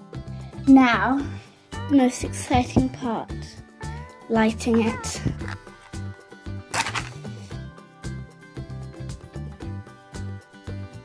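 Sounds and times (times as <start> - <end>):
background music: 0.0 - 11.0
match struck on box: 5.3 - 6.0, 6.7 - 7.5
match catching burst: 6.7 - 7.5.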